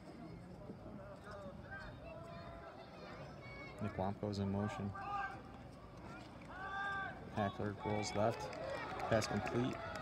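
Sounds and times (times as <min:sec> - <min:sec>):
open-air background noise: 0:00.0 - 0:10.0.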